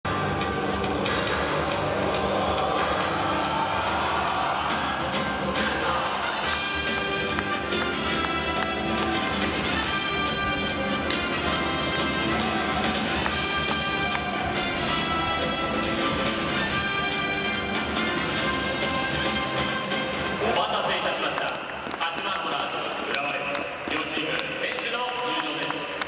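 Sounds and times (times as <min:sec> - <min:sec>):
stadium crowd noise: 0:00.0 - 0:26.0
music over stadium loudspeakers: 0:00.1 - 0:26.0.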